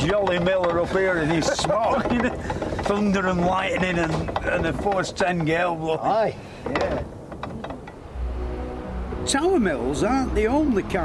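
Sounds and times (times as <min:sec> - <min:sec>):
winding gear clicking: 0:00.0 - 0:05.6
background music with low drone: 0:08.0 - 0:11.0.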